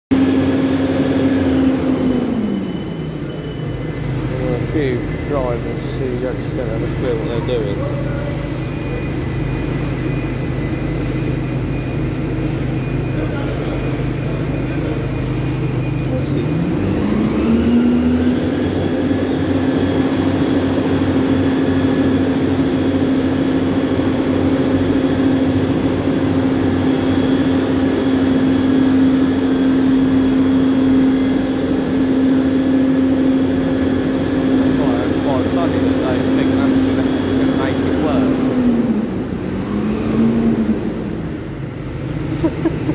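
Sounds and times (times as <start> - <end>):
bus diesel engine revving: 0.1 - 42.9.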